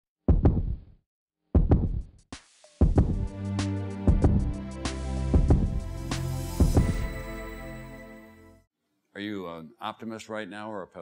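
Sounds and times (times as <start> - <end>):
heartbeat-like thumps: 0.3 - 0.8, 1.6 - 2.1, 2.8 - 3.3, 4.1 - 4.6, 5.3 - 5.8, 6.6 - 7.1.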